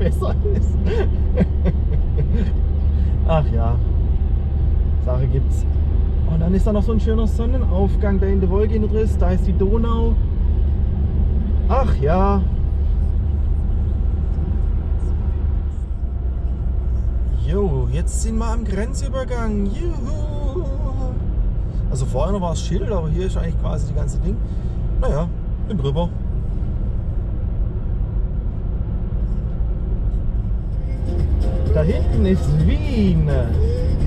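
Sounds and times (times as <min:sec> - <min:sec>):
car cabin rumble: 0:00.0 - 0:21.4, 0:22.0 - 0:34.0.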